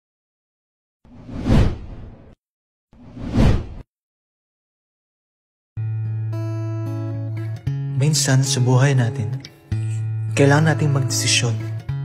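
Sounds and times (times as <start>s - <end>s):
rushing whoosh: 1.1s - 2.4s, 3.0s - 3.8s.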